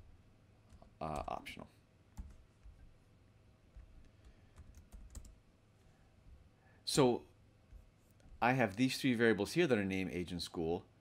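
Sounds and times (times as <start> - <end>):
computer keyboard keystrokes: 3.8 - 5.4.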